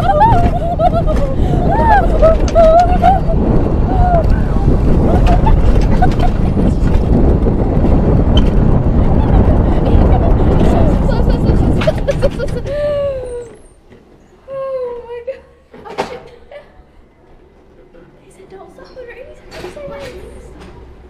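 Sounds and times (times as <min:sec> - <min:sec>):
sled wheels rumbling on rails: 0:00.0 - 0:21.0.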